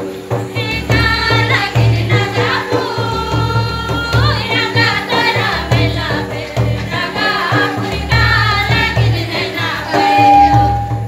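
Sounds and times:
hand drum beating: 0.0 - 11.0
voices singing in chorus: 0.3 - 11.0.

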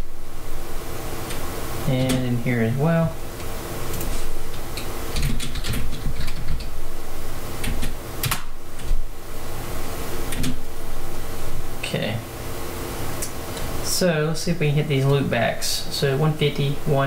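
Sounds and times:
low electrical hum: 0.0 - 17.0
computer keyboard clicking: 4.8 - 6.7, 7.6 - 9.0, 10.3 - 10.6.

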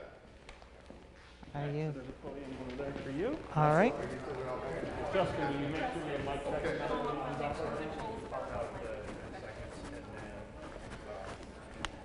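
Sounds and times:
people chatting: 1.6 - 12.0.

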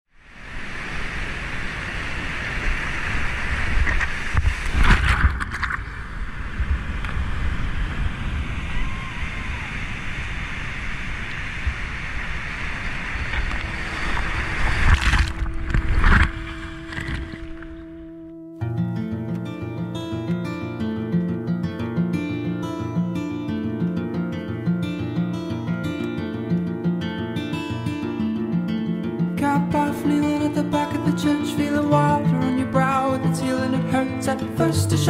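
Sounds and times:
water crashing surges: 0.2 - 18.0
whitewater rushing: 0.2 - 18.0
wind on microphone: 0.2 - 18.3.

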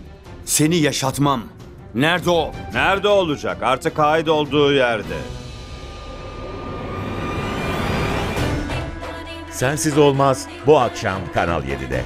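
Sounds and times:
rising whoosh: 5.2 - 8.9.

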